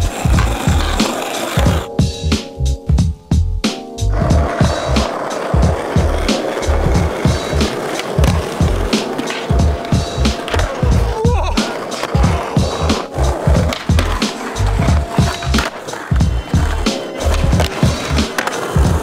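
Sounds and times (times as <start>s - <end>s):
skateboard clicks and scrapes: 0.0s - 1.9s, 4.1s - 19.0s
skateboard wheels rolling on concrete: 0.0s - 19.0s
music with heavy bass beat: 1.6s - 7.7s, 8.3s - 11.6s, 12.2s - 19.0s.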